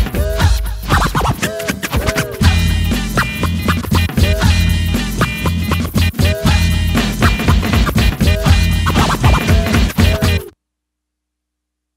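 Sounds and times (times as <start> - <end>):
hip hop drum beat: 0.0 - 10.5
turntable scratching: 0.0 - 10.5.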